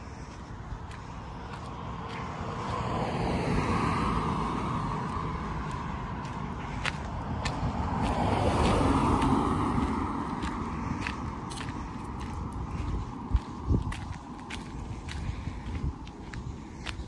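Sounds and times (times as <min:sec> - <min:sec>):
cars passing: 0:00.0 - 0:17.0.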